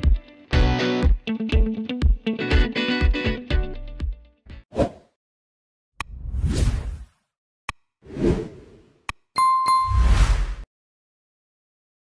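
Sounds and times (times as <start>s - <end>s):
quick dings: 9.4s - 10.0s
whoosh: 9.9s - 10.6s.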